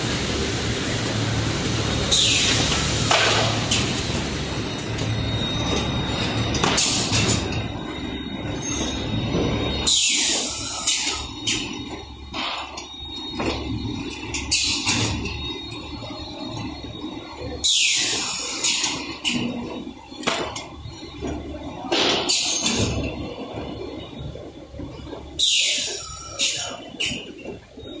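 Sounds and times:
loud air hisses: 0:00.0 - 0:04.2
machine clacks and knocks: 0:04.9 - 0:07.7, 0:18.6 - 0:23.8.

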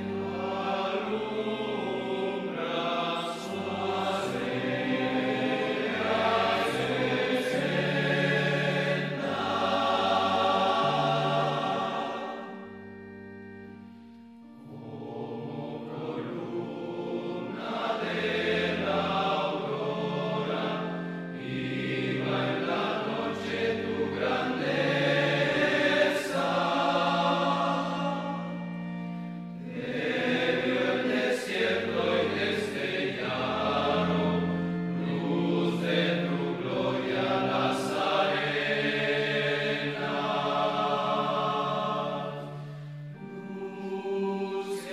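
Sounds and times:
choir singing sustained chords: 0:00.0 - 0:44.9.

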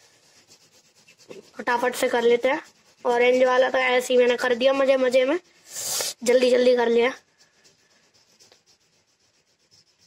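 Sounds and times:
colouring strokes on paper: 0:00.0 - 0:10.0.

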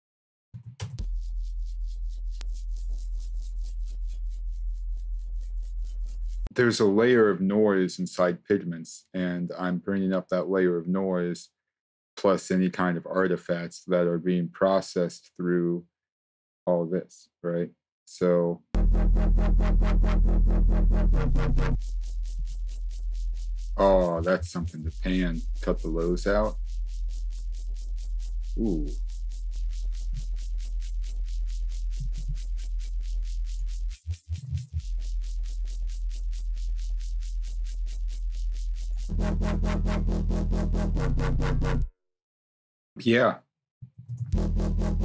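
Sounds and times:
bright heavy bass note: 0:18.8 - 0:21.9, 0:23.6 - 0:26.6, 0:28.5 - 0:29.0, 0:39.0 - 0:41.9, 0:44.4 - 0:45.0
distorted synth bass loop: 0:18.8 - 0:41.9, 0:44.3 - 0:45.0
thin pulsing high noise: 0:21.8 - 0:33.0.

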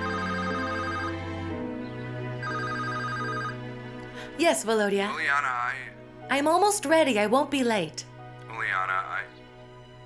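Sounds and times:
phone ringtone trilling: 0:00.0 - 0:01.3, 0:02.4 - 0:03.6
soft film score music: 0:00.0 - 0:10.0.

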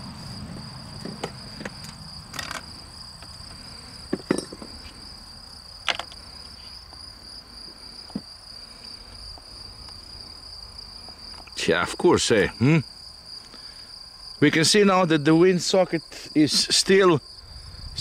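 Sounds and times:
crickets trilling: 0:00.0 - 0:18.0.

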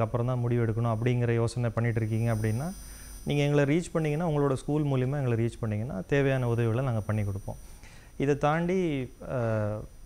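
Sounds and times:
man speaking: 0:00.0 - 0:07.6, 0:08.2 - 0:09.9
low steady hum: 0:00.0 - 0:10.0.

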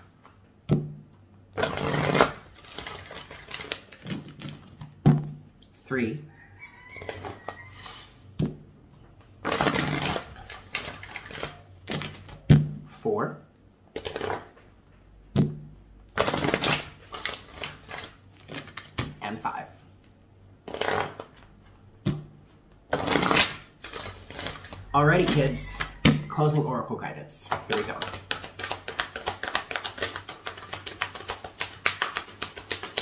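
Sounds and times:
cards being shuffled: 0:01.6 - 0:05.0, 0:09.4 - 0:12.4, 0:13.9 - 0:14.6, 0:16.2 - 0:19.2, 0:20.0 - 0:21.6, 0:22.9 - 0:26.2, 0:27.5 - 0:33.0.

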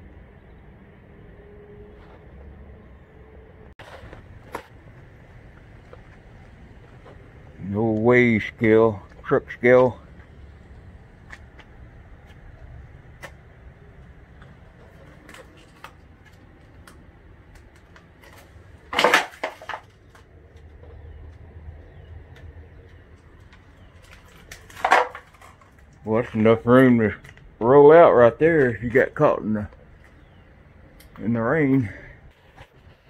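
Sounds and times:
low steady background noise: 0:00.0 - 0:33.0.

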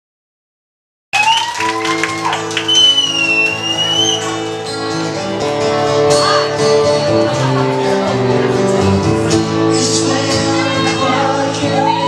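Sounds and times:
acoustic guitar chord ringing: 0:02.7 - 0:11.5.

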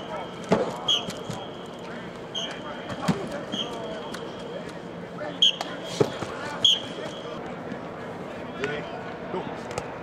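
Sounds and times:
voices in background: 0:00.0 - 0:10.0.

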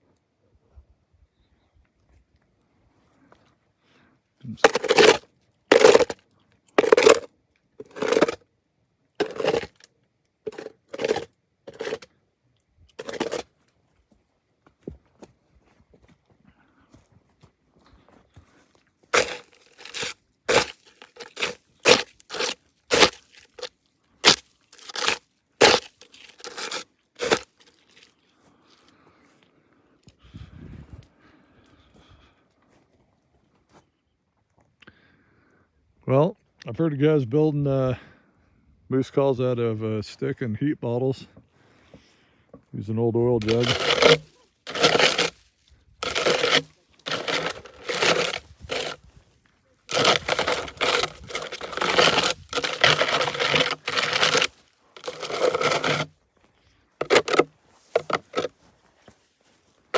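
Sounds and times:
footsteps crunching over snow: 0:13.0 - 0:29.4, 0:43.4 - 0:59.9.

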